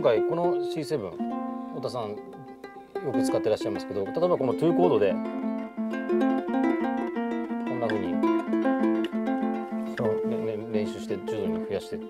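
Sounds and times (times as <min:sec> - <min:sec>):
ukulele tremolo picking: 0:00.0 - 0:12.0.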